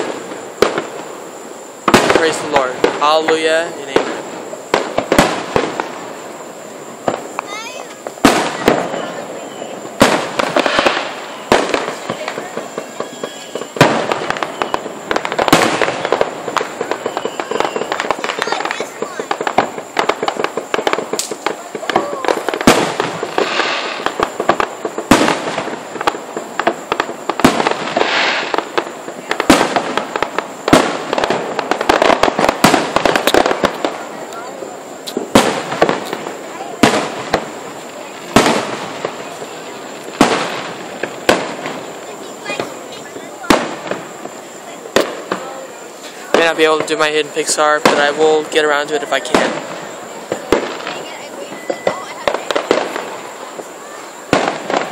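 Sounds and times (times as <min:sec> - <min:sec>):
fireworks bangs: 0:00.0 - 0:54.9
fireworks crackling: 0:00.0 - 0:54.9.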